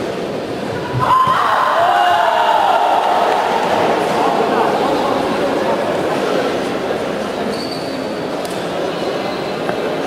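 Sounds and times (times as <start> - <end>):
spectators cheering and shouting: 0.6 - 5.4
long drawn-out shouts: 0.8 - 4.4.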